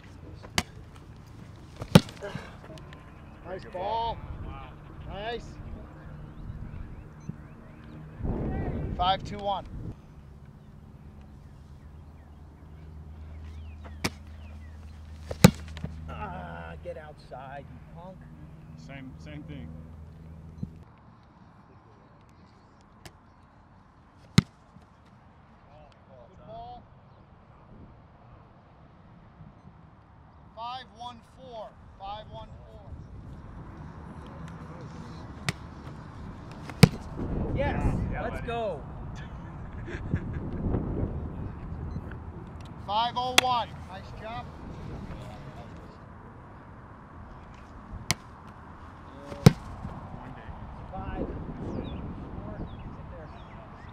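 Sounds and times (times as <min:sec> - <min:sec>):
low outdoor hum: 0:00.0 - 0:53.9
football smacking into hands: 0:00.4 - 0:00.8, 0:01.7 - 0:02.5, 0:13.8 - 0:14.4, 0:15.1 - 0:16.0, 0:36.5 - 0:37.1, 0:49.2 - 0:49.9.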